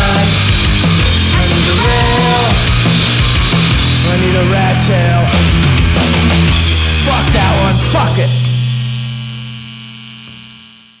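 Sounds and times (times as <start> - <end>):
ringing guitar chord: 1.1 - 3.2, 6.7 - 11.0.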